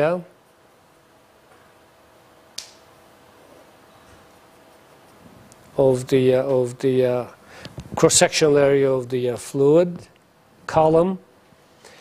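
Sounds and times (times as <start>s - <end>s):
faint room hum: 0.0s - 12.0s
sharp click: 2.6s - 2.8s.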